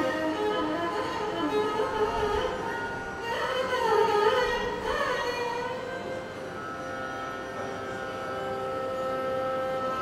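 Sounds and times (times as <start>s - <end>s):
long held melodic note: 5.6s - 10.0s.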